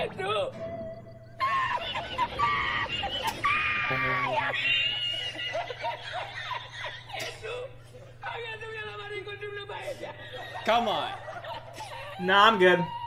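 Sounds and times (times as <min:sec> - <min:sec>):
laughter: 0:01.4 - 0:08.4, 0:09.6 - 0:13.0.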